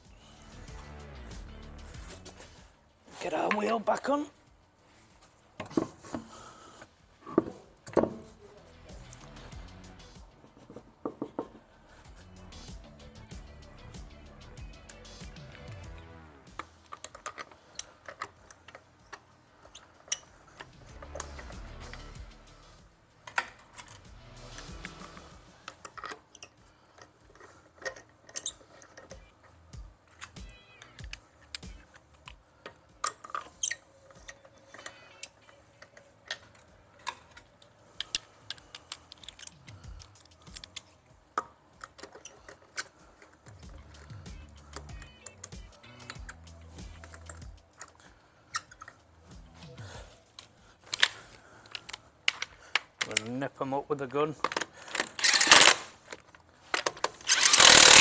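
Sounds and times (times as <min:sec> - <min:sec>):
faint background music: 0:00.0 - 0:58.0
metal bolts clicking against wheel: 0:16.5 - 0:22.1, 0:25.6 - 0:49.4, 0:50.4 - 0:53.5, 0:54.3 - 0:58.0.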